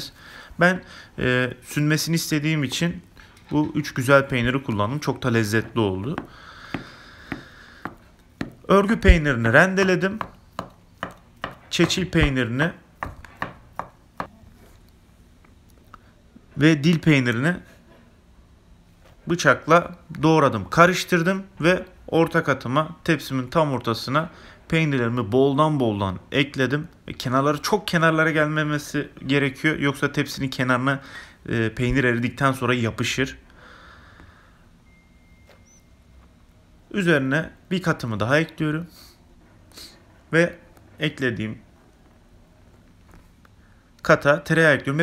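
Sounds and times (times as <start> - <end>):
knife chopping on wooden board: 5.6 - 9.2, 10.2 - 12.4, 13.0 - 14.3
faint high chirp: 34.8 - 36.3.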